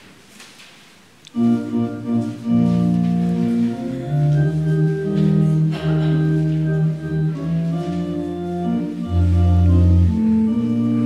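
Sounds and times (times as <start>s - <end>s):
organ chords on electronic keyboard: 1.3s - 11.0s.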